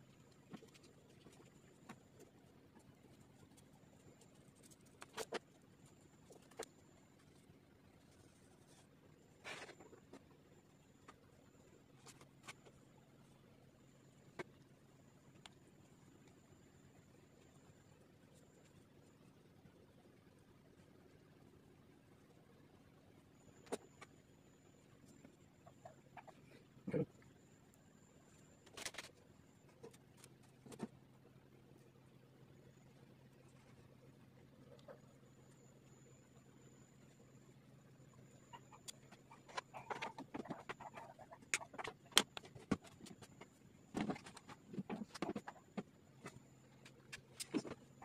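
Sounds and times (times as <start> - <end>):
faint high-pitched whine: 0.0 - 48.0.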